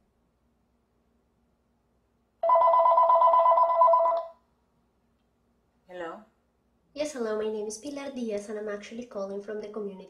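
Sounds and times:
telephone two-tone trill: 0:02.4 - 0:04.3.

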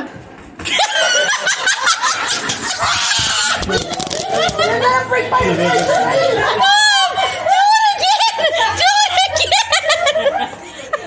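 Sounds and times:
person laughing hard: 0:00.7 - 0:04.8.

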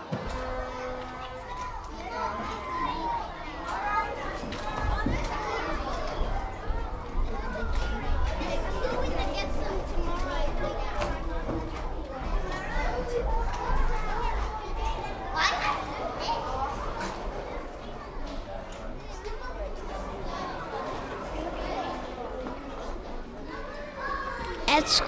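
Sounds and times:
children calling and chattering: 0:00.0 - 0:25.0.

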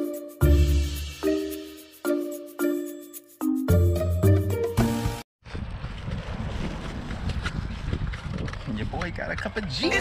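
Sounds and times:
instrumental background music: 0:00.0 - 0:05.2.

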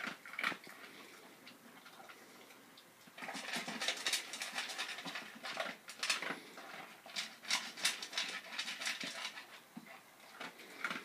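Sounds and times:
dog eating from a steel bowl: 0:00.0 - 0:11.0.

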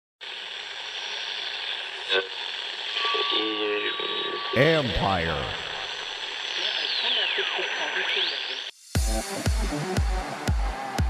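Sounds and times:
static-like hiss: 0:00.2 - 0:08.8
held electronic tone: 0:02.0 - 0:08.7.

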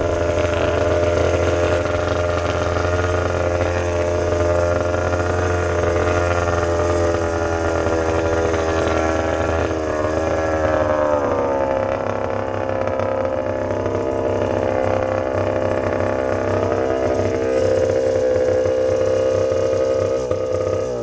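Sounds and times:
dirt bike engine at low revs: 0:00.0 - 0:21.0.

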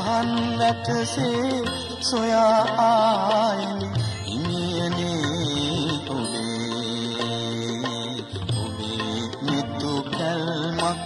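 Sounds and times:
devotional song with instruments: 0:00.0 - 0:11.0.

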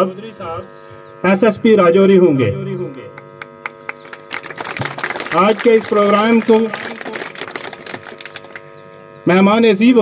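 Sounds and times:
electrical hum from sound system: 0:00.0 - 0:10.0.

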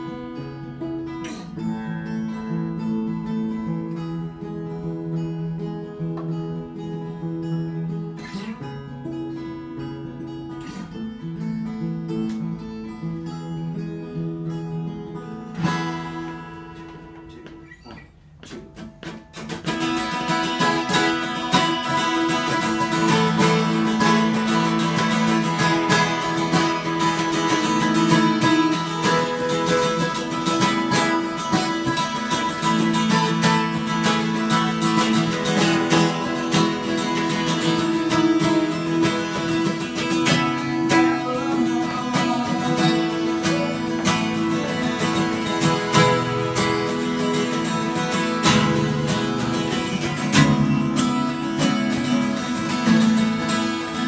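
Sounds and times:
acoustic guitars strumming: 0:00.0 - 0:54.0.

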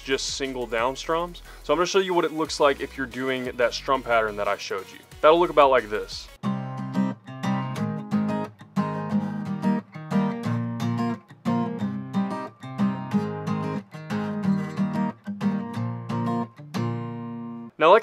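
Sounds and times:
acoustic guitar strumming chords: 0:05.3 - 0:18.0.

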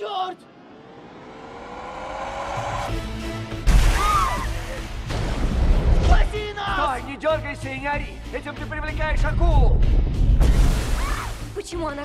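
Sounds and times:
swell of noise: 0:00.3 - 0:03.2
low rumble: 0:00.5 - 0:03.9.

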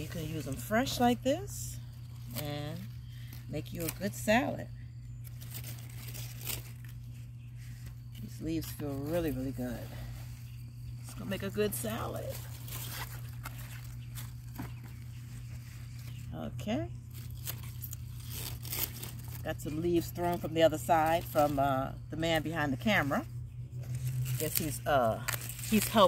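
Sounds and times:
leaves rustling and crinkling: 0:00.0 - 0:26.0
steady low hum: 0:00.0 - 0:26.0
crisp leaf snaps: 0:05.2 - 0:07.0.

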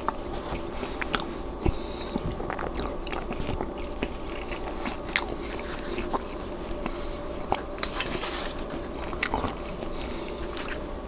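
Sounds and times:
chewing mouth sounds: 0:00.0 - 0:10.8
crust crackling: 0:00.0 - 0:10.9.

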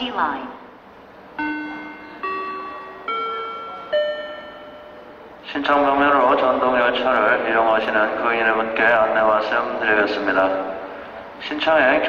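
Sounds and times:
rising bell-like chime: 0:01.4 - 0:05.1.

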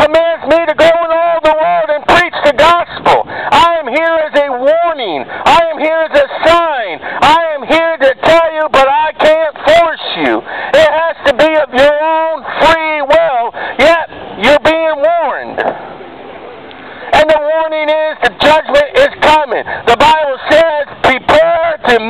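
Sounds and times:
distorted shouted preaching voice: 0:00.0 - 0:15.8, 0:17.1 - 0:22.0.

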